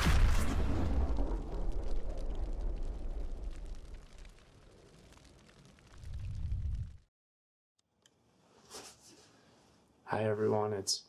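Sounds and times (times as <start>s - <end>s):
explosion boom with crackling: 0.0s - 7.1s.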